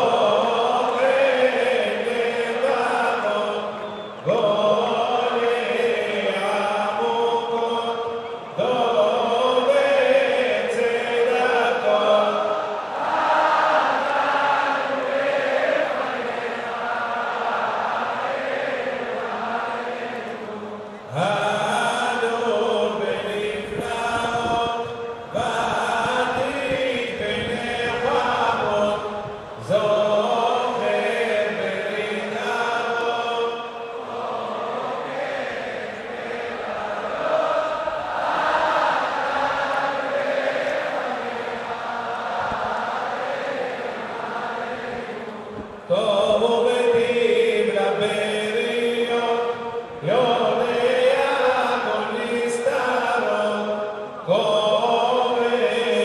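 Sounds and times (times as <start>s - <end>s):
voices chanting prayers: 0.0s - 56.0s.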